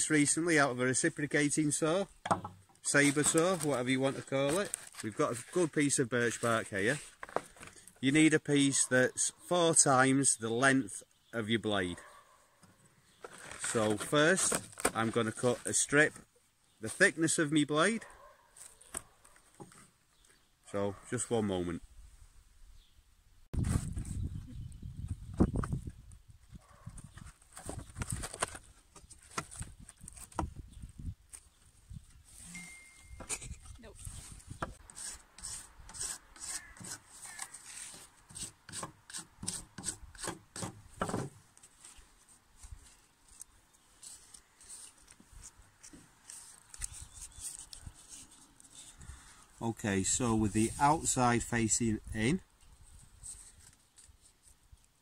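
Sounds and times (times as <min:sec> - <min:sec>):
knife scraping bark: 0:33.3 - 0:40.8, 0:43.3 - 0:49.3.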